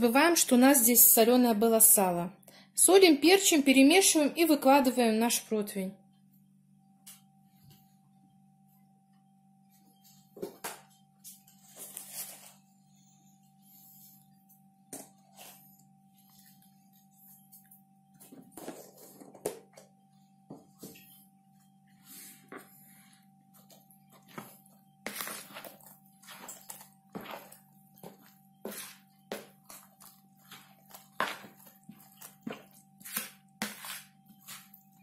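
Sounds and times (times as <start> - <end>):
faint steady hum: 3.5 - 35.0
hand squelching wet batter: 24.2 - 35.0.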